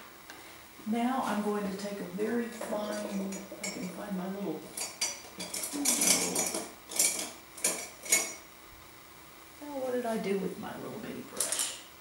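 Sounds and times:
painting tools clinking and rattling: 2.6s - 4.0s, 4.7s - 8.4s.

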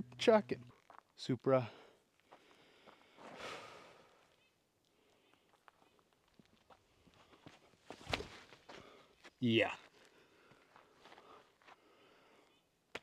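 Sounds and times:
footsteps on dirt trail: 0.7s - 1.2s, 2.2s - 3.4s, 5.4s - 11.9s.

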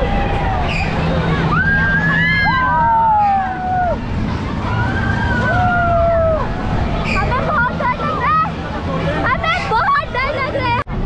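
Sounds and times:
excited shouts and chatter: 0.0s - 10.9s
crowd hubbub: 0.0s - 11.0s.

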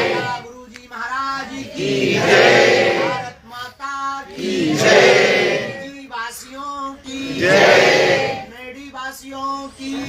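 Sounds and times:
congregation singing in unison: 0.0s - 0.5s, 1.1s - 3.4s, 4.2s - 5.9s, 7.0s - 8.6s
man singing into a microphone: 0.4s - 1.6s, 5.8s - 7.2s, 8.5s - 10.0s.

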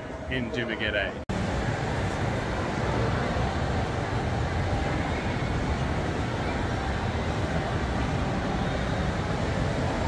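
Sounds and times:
distant crowd hubbub: 0.0s - 10.0s
low indoor rumble: 0.0s - 10.0s.

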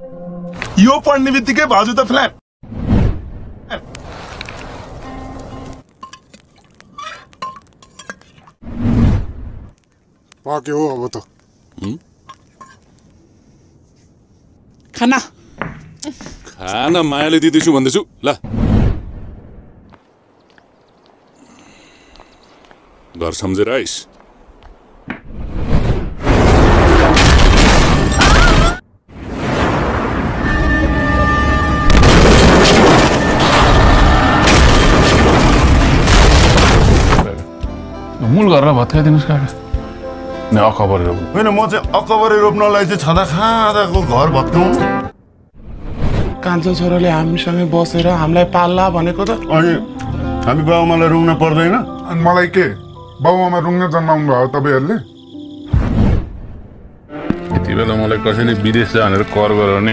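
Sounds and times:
spoon scraping and clinking in metal pot: 7.3s - 8.4s
booming impacts and crashes: 25.2s - 37.4s, 55.7s - 57.1s.

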